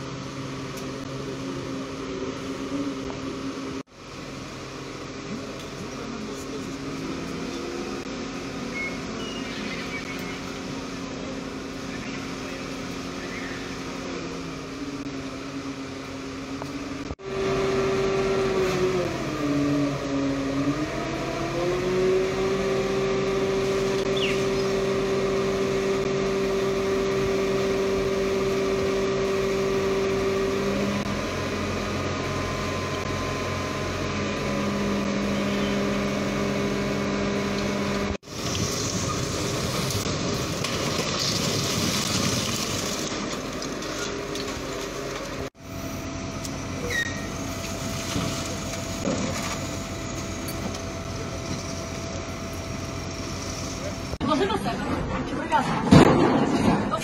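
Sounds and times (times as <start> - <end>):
diesel engines droning: 0.0 - 57.0.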